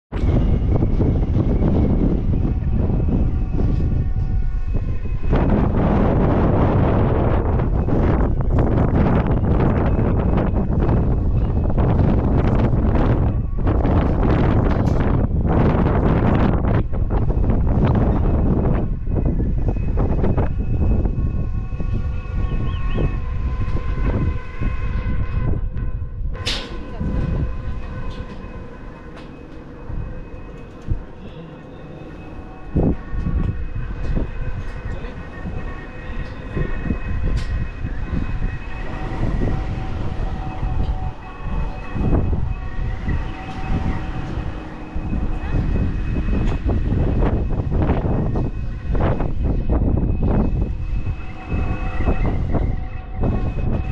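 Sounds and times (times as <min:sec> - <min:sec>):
wind buffeting microphone: 0:00.1 - 0:53.9
steady hum of held tones: 0:00.2 - 0:53.9.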